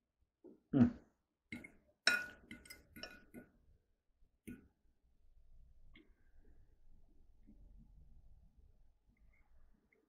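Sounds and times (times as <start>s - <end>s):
fork clinking on a plate: 1.5s - 3.4s.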